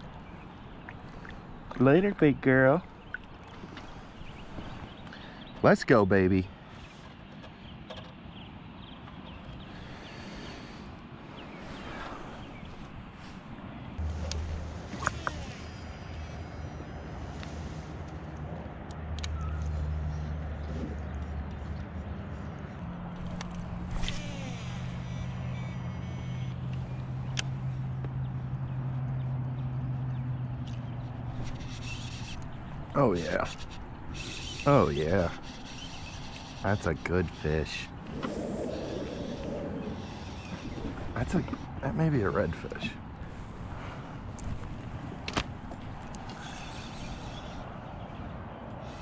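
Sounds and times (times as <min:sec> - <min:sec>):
distant engine droning: 0:00.0 - 0:49.0
faint open-water ambience: 0:00.0 - 0:49.0.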